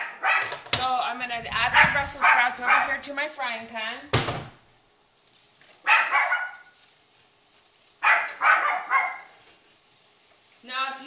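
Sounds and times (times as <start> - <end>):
dog barking: 0.0 - 0.6, 1.7 - 3.0, 5.8 - 6.8, 8.0 - 9.4.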